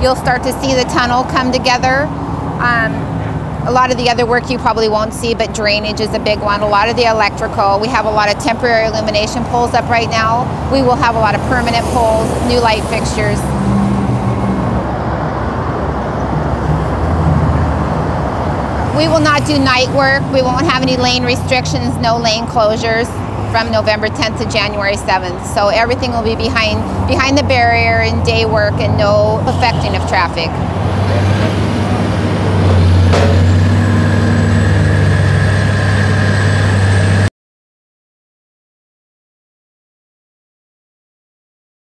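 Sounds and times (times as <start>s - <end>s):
freeway traffic noise: 0.0s - 37.3s
heavy vehicle engines droning: 0.0s - 37.3s.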